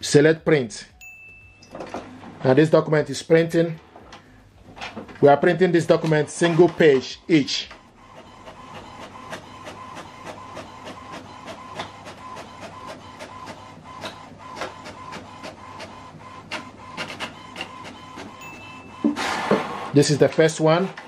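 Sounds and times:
printer motor whirring: 5.8 - 21.0.

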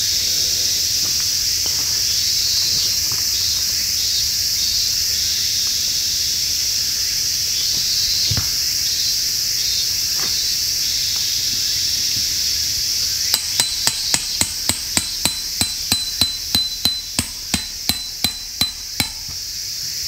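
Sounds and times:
insects hissing: 0.0 - 20.0
hammer striking tent peg: 13.3 - 19.4.

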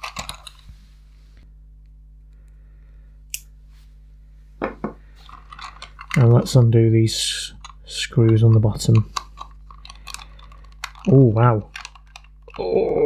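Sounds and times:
plastic toy clicks and knocks: 0.0 - 0.6, 7.5 - 12.7
faint steady hum: 0.0 - 13.0.

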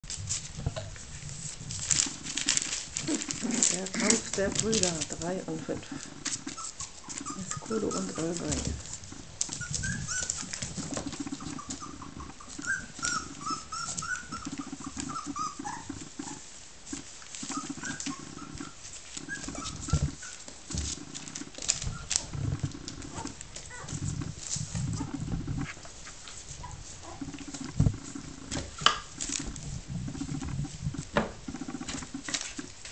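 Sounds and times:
scuffling with claw clicks: 0.0 - 32.9
puppies growling: 0.3 - 32.9
puppies squeaking and yipping: 1.8 - 32.6.

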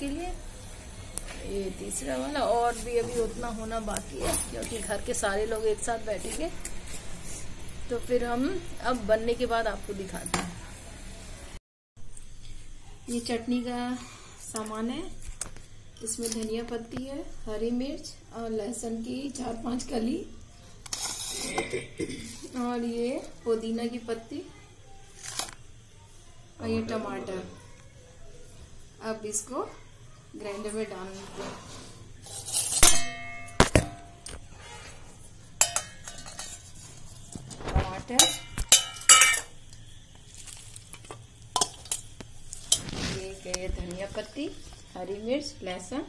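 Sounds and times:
metal bowls clinking and clattering: 3.9 - 6.8, 32.2 - 35.0, 35.6 - 39.8, 40.4 - 42.9.

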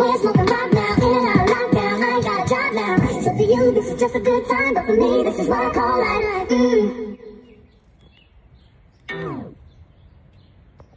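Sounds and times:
faint outdoor background: 0.0 - 10.9.

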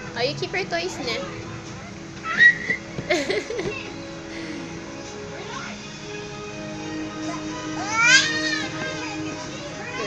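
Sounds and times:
toddler squealing: 2.2 - 2.8, 7.8 - 8.8.

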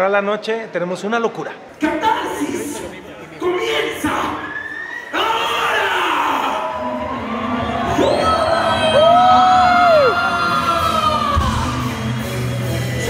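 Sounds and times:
crowd cheering and whooping: 4.4 - 12.4
live rock music: 9.9 - 13.0.

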